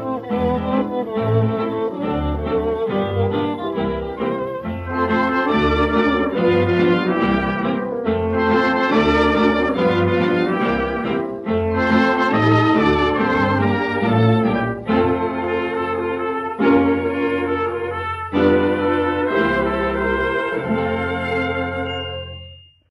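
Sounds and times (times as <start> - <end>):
dance orchestra playing fox-trot: 0.0 - 22.2.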